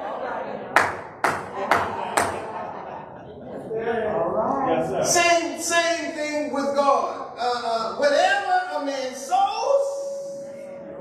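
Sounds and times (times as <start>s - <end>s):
man clapping hands: 0.8s - 2.4s.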